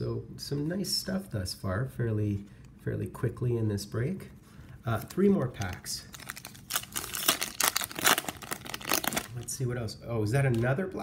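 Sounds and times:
plastic wrapper tearing and crinkling: 4.9 - 9.6.

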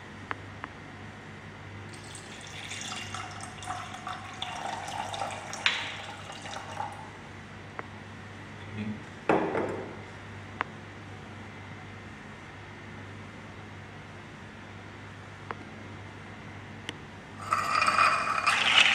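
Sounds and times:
water trickling into a glass: 1.9 - 7.2, 17.4 - 18.9.

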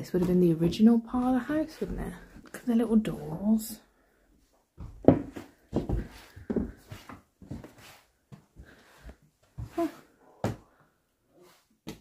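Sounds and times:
irregular knocks and thuds: 4.8 - 7.7.

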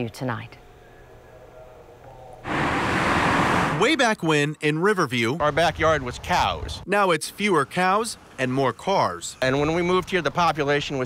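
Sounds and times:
cars driving past: 2.4 - 3.9.

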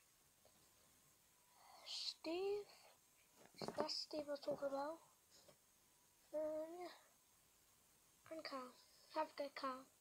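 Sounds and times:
person whispering: 1.6 - 3.0.

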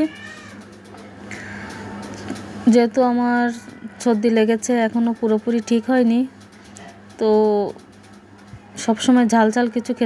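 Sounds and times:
cat meowing: 0.0 - 0.6.

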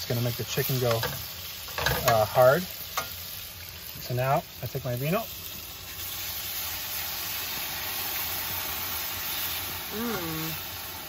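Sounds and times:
wine sizzling in hot pan: 0.0 - 11.0.

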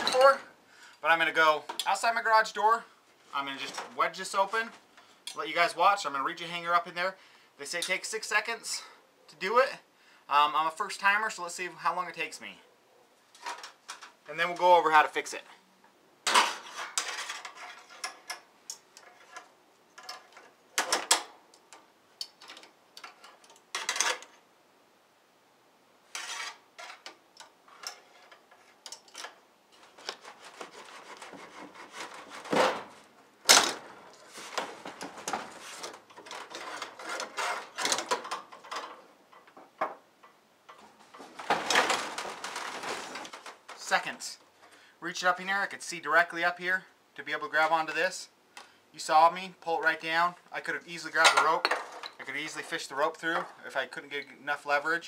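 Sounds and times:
wire hanger scraping on door: 16.5 - 18.3, 26.1 - 33.1, 34.1 - 38.8.

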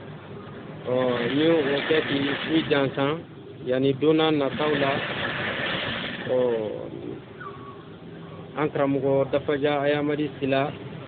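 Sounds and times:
rough rushing noise: 4.4 - 6.5.

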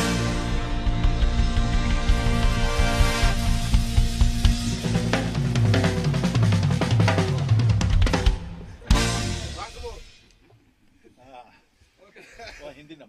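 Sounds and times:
rock and roll song: 0.0 - 10.2.

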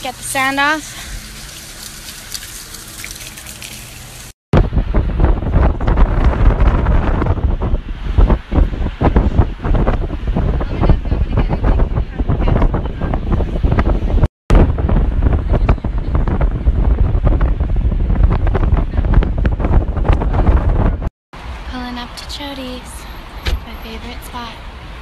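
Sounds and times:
water running from a tap: 0.0 - 4.4
wind buffeting microphone: 4.6 - 21.1.

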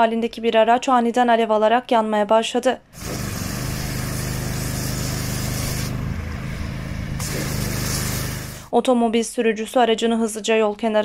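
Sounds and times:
diesel engine running: 3.0 - 8.7.

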